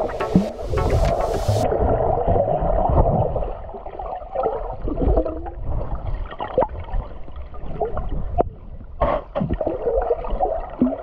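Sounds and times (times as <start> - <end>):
muffled underwater creek water gurgling: 0.0 - 11.0.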